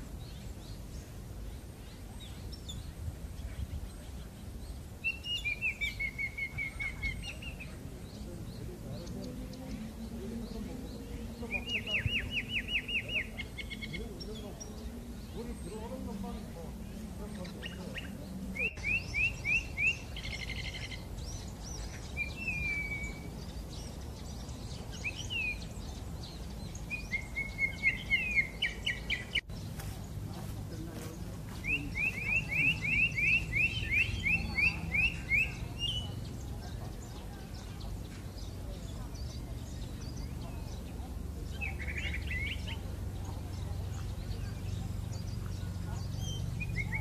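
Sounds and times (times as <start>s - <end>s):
blackbird singing: 0.0s - 47.0s.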